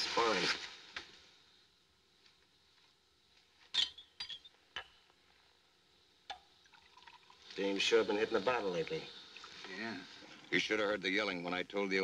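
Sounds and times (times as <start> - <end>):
tableware clinking: 3.8 - 4.5.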